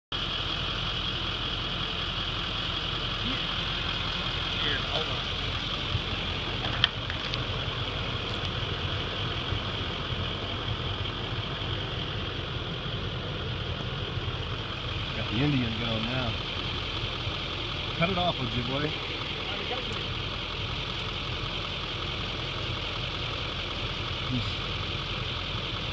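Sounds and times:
truck engine idling: 0:00.1 - 0:25.9.

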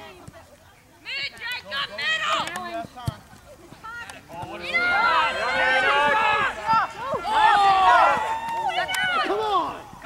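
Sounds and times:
people shouting and yelling: 0:01.0 - 0:03.0, 0:03.8 - 0:10.0.

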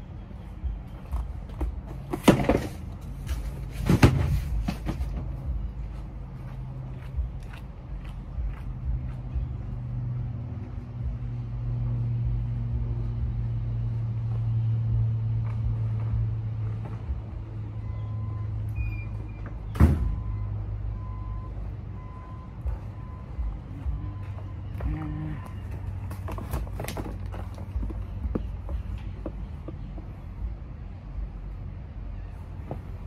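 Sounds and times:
vehicle engine running: 0:04.4 - 0:18.8, 0:20.3 - 0:33.0.

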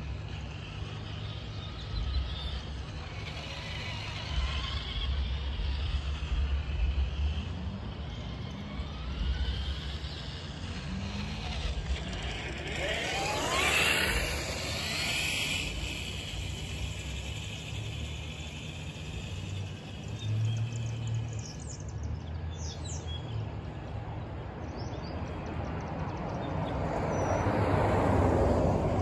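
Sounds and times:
steady low hum: 0:00.0 - 0:22.5
birds chirping: 0:00.0 - 0:27.5
vehicle passing by whine: 0:00.0 - 0:29.0.

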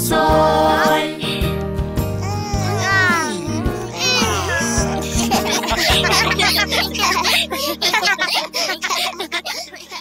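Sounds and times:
children's song with bass: 0:00.0 - 0:08.3
cartoon voices yawning: 0:02.2 - 0:05.2.

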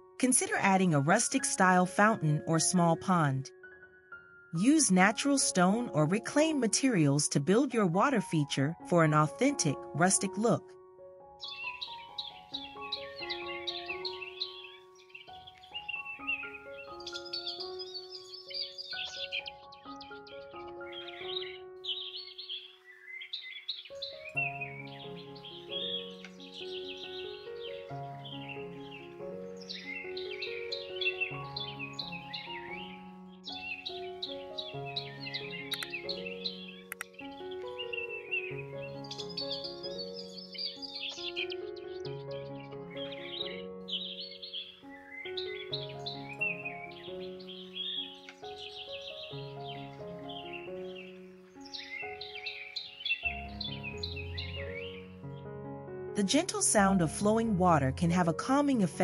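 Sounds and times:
calm background music: 0:00.0 - 0:59.0
birds chirping: 0:11.4 - 0:55.6.

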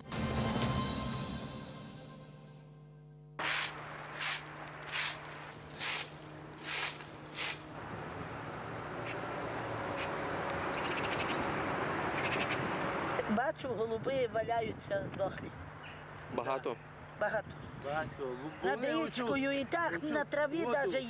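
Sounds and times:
steady outdoor noise: 0:03.4 - 0:21.0
crow cawing: 0:09.9 - 0:11.5, 0:12.1 - 0:12.7.

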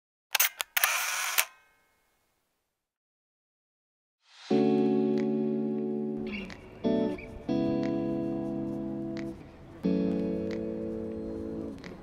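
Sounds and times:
camera shutter click: 0:00.3 - 0:01.6.

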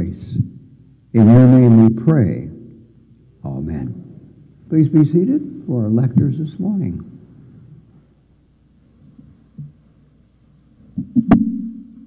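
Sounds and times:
steady low hum: 0:00.0 - 0:12.0
microphone handling thumps: 0:10.9 - 0:11.6.

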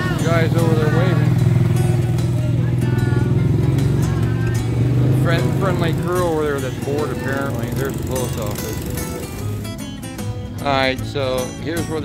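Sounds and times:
small motorcycle engines running: 0:00.0 - 0:12.0.

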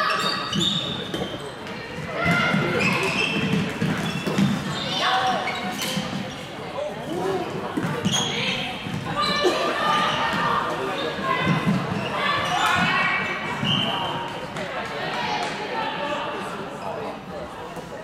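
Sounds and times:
shoes squeaking on court floor: 0:00.0 - 0:14.6.

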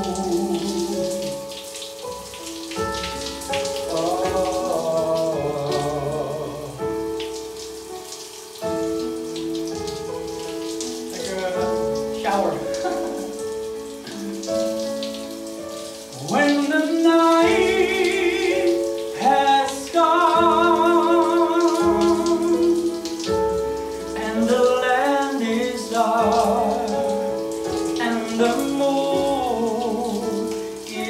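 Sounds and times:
shower water spattering: 0:00.0 - 0:31.0.

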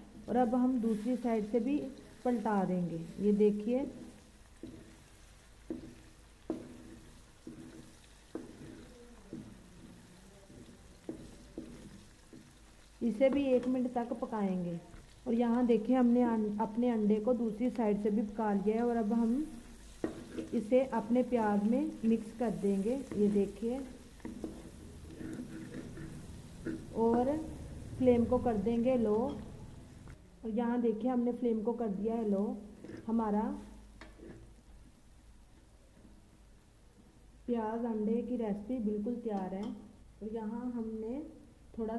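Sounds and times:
spatula scraping pan: 0:00.0 - 0:02.5, 0:03.1 - 0:14.3, 0:17.7 - 0:30.0, 0:32.3 - 0:34.6
frying sizzle: 0:00.0 - 0:30.2
spatula tapping pan: 0:03.6 - 0:14.3, 0:14.9 - 0:27.6, 0:28.8 - 0:29.8, 0:34.0 - 0:34.5
spatula knocking on metal pan: 0:04.0 - 0:05.0, 0:05.7 - 0:12.6, 0:20.0 - 0:20.5.

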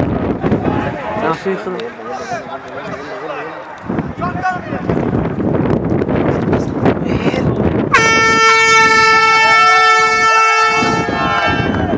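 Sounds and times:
air horn blast: 0:07.9 - 0:11.7
people shouting: 0:09.0 - 0:11.9.

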